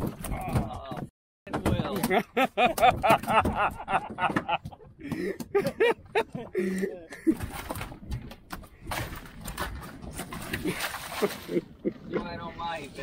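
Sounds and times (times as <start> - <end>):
rustling and knocking handling noise: 0.0 - 6.6
men laughing and calling out: 1.9 - 7.6, 10.6 - 12.6.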